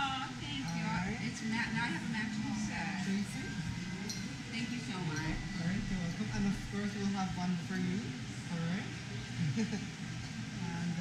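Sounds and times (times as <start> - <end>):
indistinct conversation: 0.0 - 11.0.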